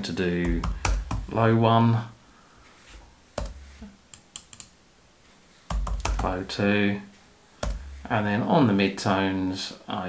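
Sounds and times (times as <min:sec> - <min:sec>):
computer keyboard typing: 0:00.4 - 0:01.3, 0:03.4 - 0:04.7, 0:05.7 - 0:06.4, 0:07.6 - 0:07.9.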